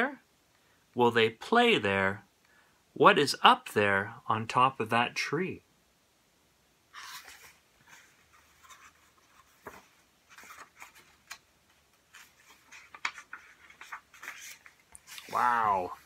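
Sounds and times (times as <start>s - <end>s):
paper pages rustling: 6.9s - 16.0s.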